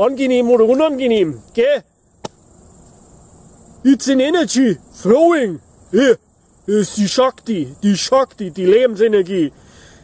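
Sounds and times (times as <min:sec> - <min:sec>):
crickets chirring: 0:00.0 - 0:10.0
sharp click: 0:02.2 - 0:02.4
man's voice: 0:03.9 - 0:09.6.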